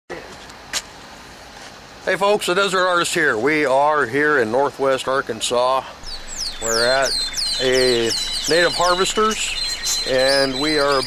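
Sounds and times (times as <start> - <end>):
steady background noise: 0.1 - 11.0.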